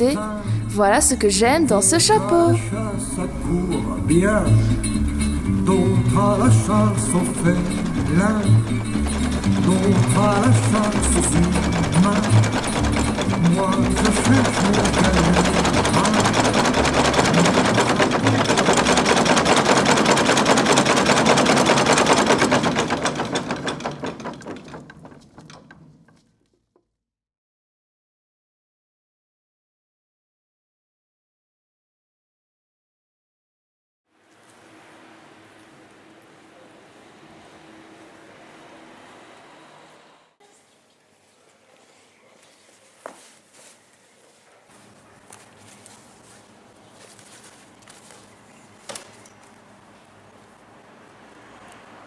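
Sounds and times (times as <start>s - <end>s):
machine clattering rapidly: 3.3s - 26.3s
footsteps on paved street: 41.8s - 50.7s.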